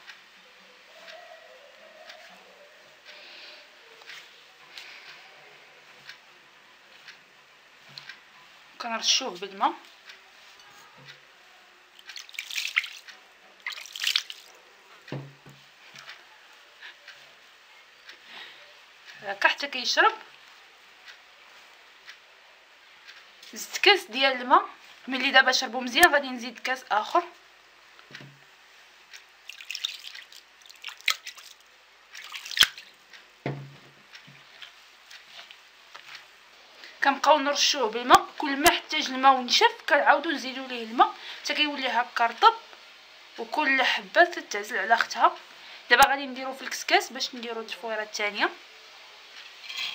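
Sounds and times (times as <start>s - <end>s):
splashy rustles of grains: 12.0s - 14.6s, 29.4s - 33.0s
soft thud: 33.4s - 34.0s.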